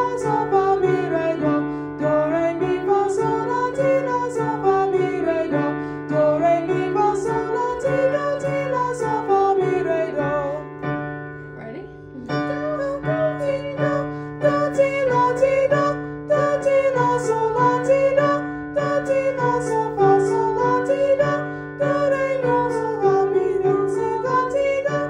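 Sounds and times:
sustained piano chords: 0.0s - 25.0s
person singing vocal scales: 11.6s - 25.0s.

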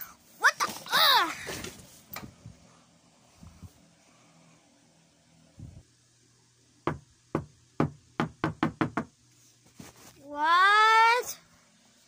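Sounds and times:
knocking on a door: 6.8s - 9.2s.

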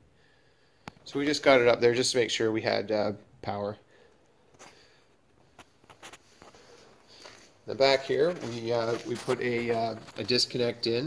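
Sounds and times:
soft sniff: 3.9s - 7.6s.

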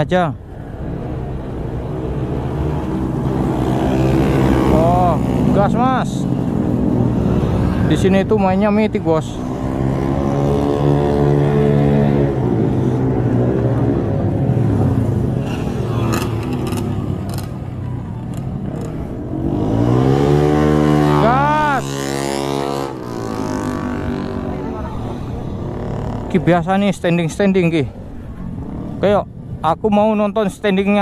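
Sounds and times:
motorcycle engines revving: 0.0s - 31.0s
motorcycle passing by: 0.6s - 26.7s, 28.0s - 29.6s.

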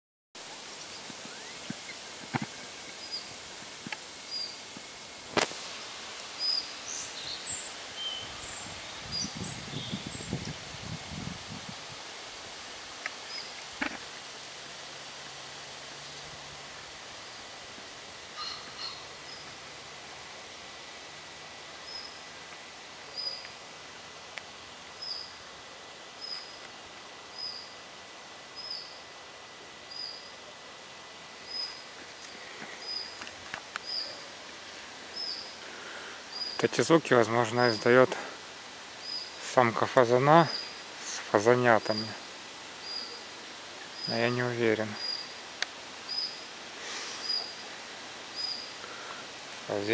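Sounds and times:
leaves rustling: 0.4s - 49.9s
short high chirping calls: 18.4s - 19.5s.

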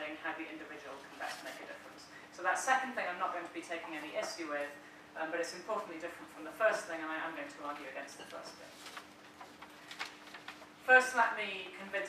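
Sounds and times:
woman speaking: 0.0s - 8.8s, 10.8s - 12.0s.

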